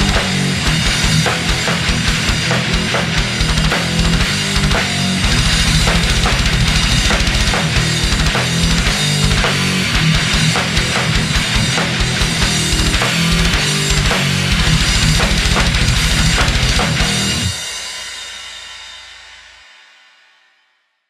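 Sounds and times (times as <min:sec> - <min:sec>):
fast bass drum strokes: 0:00.0 - 0:18.3
death metal band playing: 0:00.0 - 0:18.6.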